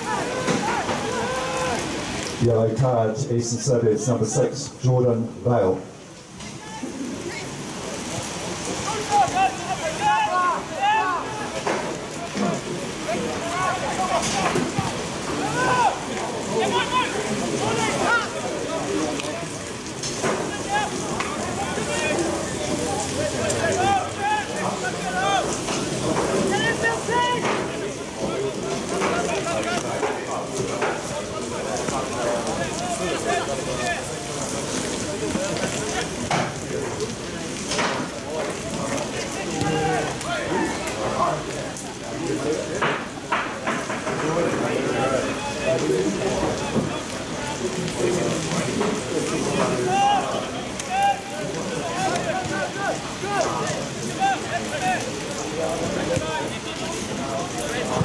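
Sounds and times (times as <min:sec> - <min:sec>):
people calling out: 0:00.0 - 0:02.2, 0:08.8 - 0:11.6, 0:13.0 - 0:19.6, 0:20.4 - 0:25.7, 0:39.2 - 0:41.1, 0:49.6 - 0:57.8
rain pattering: 0:00.0 - 0:58.0.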